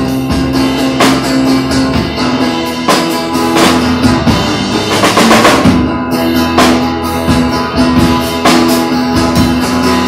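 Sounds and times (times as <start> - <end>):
live band playing: 0.0 - 10.0
snare and cymbal hits: 0.0 - 10.0.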